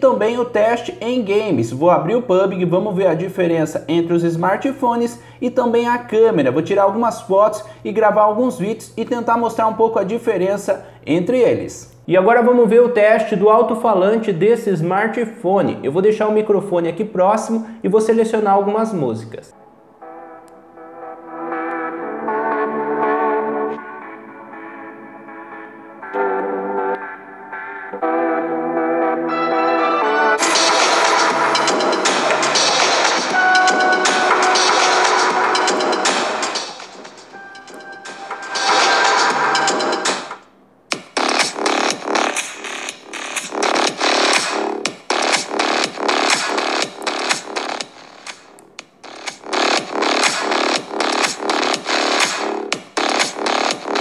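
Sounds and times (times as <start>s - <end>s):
electronic dance music from phone: 20.2s - 54.0s.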